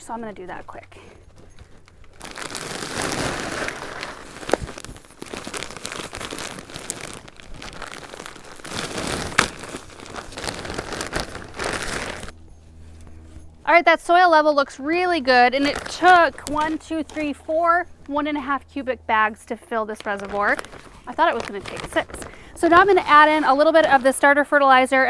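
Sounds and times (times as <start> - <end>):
plastic bag crinkling and rustling: 0.0 - 12.3, 15.3 - 17.4, 19.9 - 25.0.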